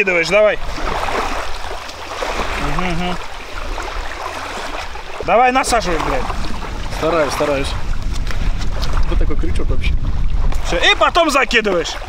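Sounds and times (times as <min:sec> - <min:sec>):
wind and water on shore: 0:00.0 - 0:12.0
wind rumble on microphone: 0:03.7 - 0:12.0.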